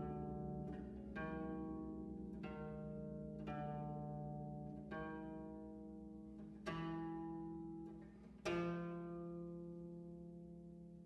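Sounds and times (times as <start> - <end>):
bass zither plucked notes: 0.0 - 11.0.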